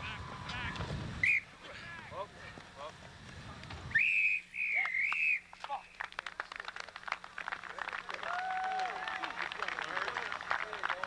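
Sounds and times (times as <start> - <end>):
referee's whistle blasts: 1.2 - 1.5, 3.9 - 5.5.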